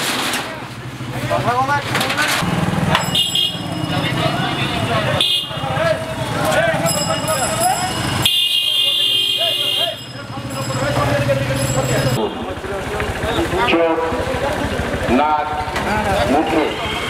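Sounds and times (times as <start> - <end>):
people talking: 3.6 - 17.0
motor engine humming: 10.0 - 17.0.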